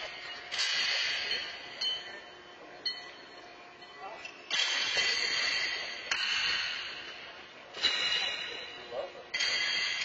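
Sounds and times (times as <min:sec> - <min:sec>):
horseshoes clanking: 0:00.0 - 0:10.0.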